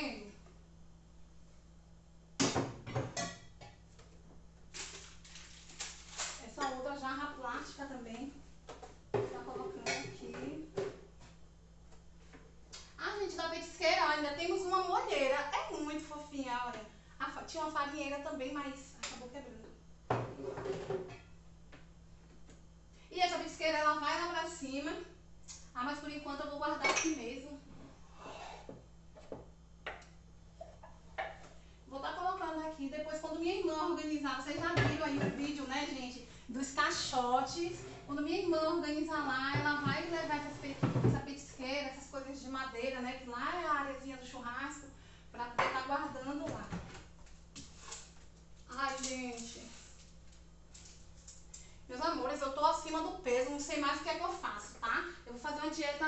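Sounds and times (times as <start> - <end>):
woman's voice: 0.0 - 0.4, 6.4 - 8.4, 9.2 - 10.8, 13.0 - 19.8, 23.1 - 25.2, 25.8 - 27.7, 31.9 - 46.9, 48.7 - 49.8, 51.9 - 56.0.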